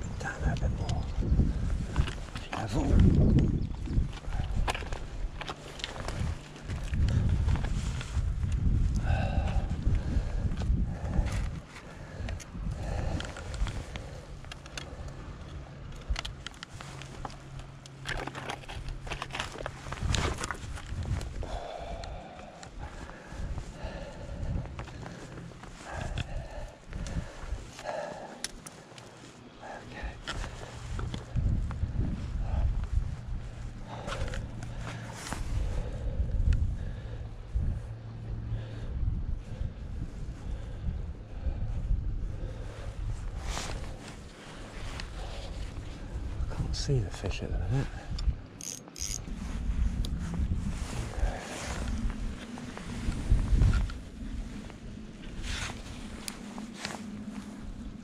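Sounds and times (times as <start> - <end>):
wind buffeting microphone: 0.0 - 28.8, 29.6 - 58.0
breathy vocal sounds: 8.9 - 15.4, 19.6 - 46.7, 50.7 - 57.6.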